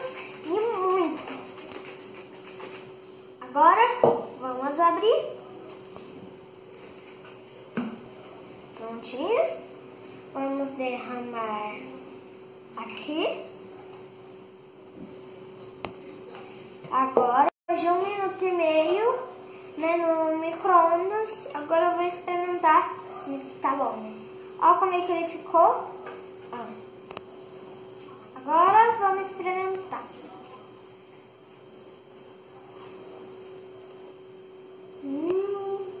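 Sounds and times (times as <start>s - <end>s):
faint steady hum: 0.0s - 36.0s
child humming mmm: 35.0s - 36.0s.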